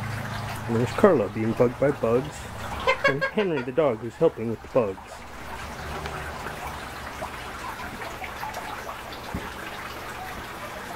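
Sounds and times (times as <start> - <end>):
water drips: 0.0 - 10.9
water trickling and splashing: 0.0 - 10.9.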